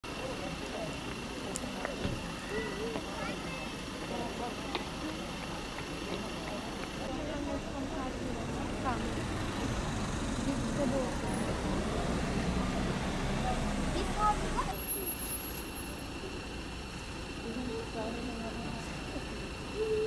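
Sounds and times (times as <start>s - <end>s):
traffic hum: 0.0s - 20.0s
people talking indistinctly: 0.1s - 20.0s.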